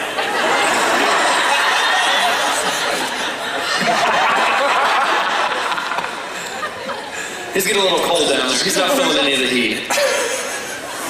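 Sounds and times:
audience laughing and chattering: 0.0 - 11.0.

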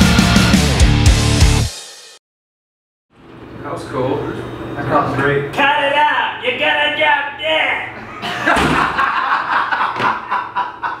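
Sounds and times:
men laughing: 8.0 - 11.0.

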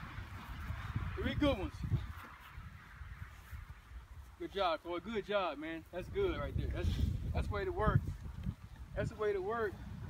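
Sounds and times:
faint outdoor background: 0.0 - 10.0
wind rumble on microphone: 0.0 - 10.0.

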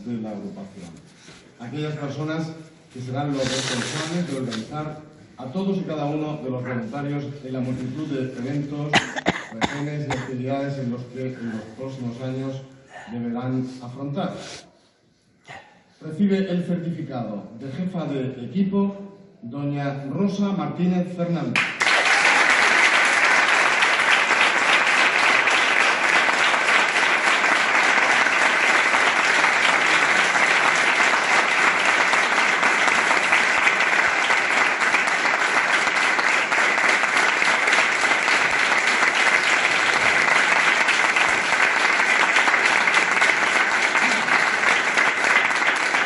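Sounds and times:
audience applause: 21.6 - 46.0.

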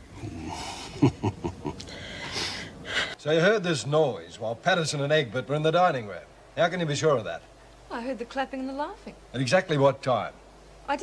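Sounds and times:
woman laughing: 0.8 - 1.9.

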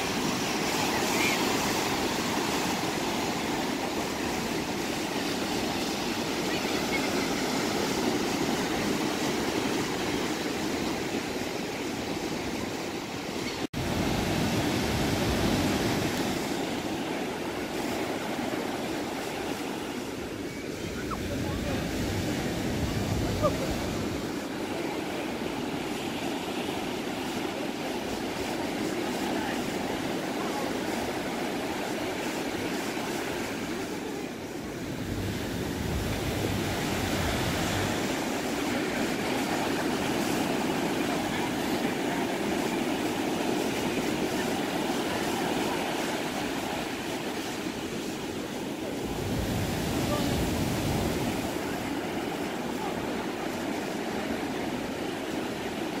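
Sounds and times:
ocean surf washing onto beach: 0.0 - 56.0
waves breaking: 0.0 - 56.0.

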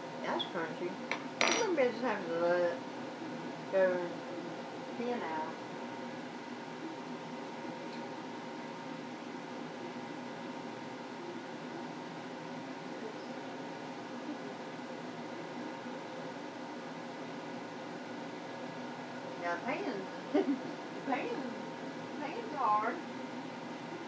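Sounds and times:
range hood fan humming: 0.0 - 24.0.

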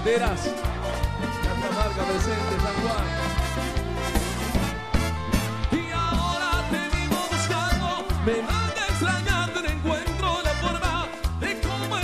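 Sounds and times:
pulsing bass line: 0.0 - 11.8
drums and percussion: 0.0 - 12.0
person singing: 5.6 - 12.0.

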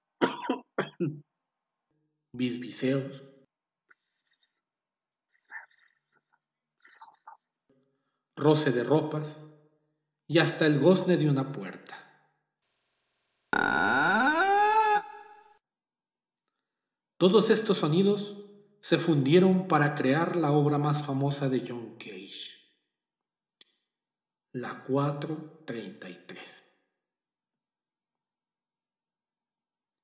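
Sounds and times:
person coughing: 0.2 - 1.2.

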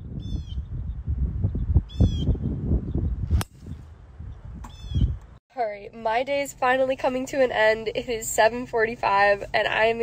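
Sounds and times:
low wind rumble: 0.0 - 5.4
bird calling: 4.7 - 5.2.

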